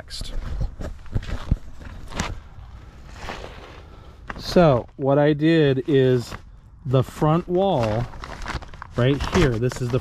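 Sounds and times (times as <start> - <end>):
soft rustling and handling: 0.2 - 10.0.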